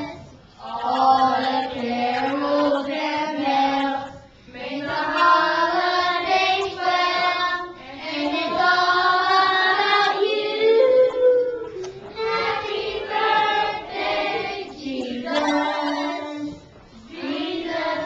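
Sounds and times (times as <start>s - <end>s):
children singing together: 0.0s - 18.0s.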